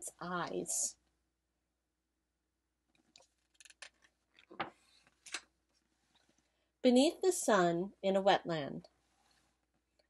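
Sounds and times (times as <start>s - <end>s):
book page turning: 3.1s - 5.5s.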